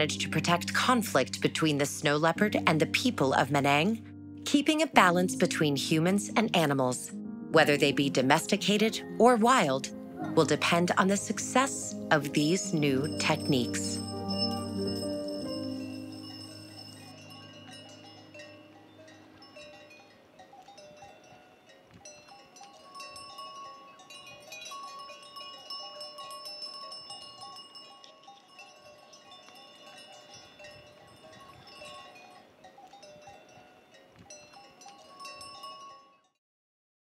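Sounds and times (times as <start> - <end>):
music: 0.0 - 20.2
small bells ringing and clinking: 11.2 - 36.4.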